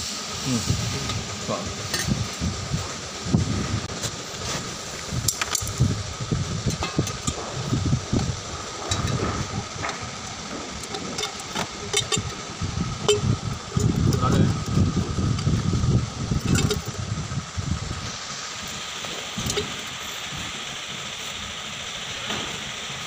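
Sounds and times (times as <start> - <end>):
workshop hum: 0.0 - 23.0
metal pipe clicks and knocks: 10.6 - 12.4, 13.0 - 14.1, 16.4 - 16.9.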